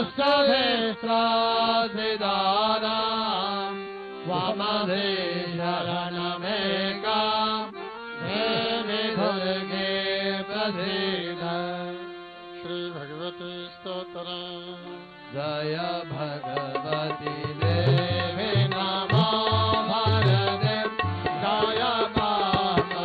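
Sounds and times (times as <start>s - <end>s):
hymn chanted to a melody: 0.0s - 12.0s.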